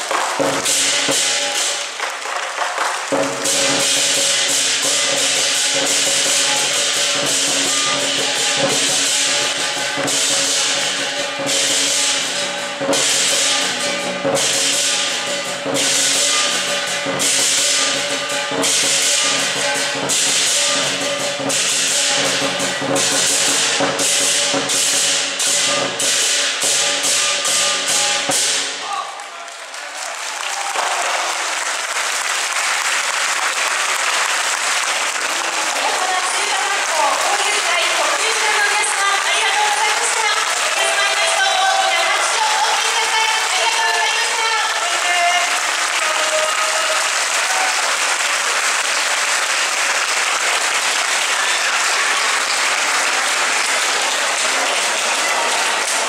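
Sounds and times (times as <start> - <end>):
crashing hand cymbals: 0.0 - 2.2, 3.1 - 29.0
crowd applauding: 0.0 - 11.9, 28.8 - 56.0
large drum playing rhythm: 0.0 - 29.0.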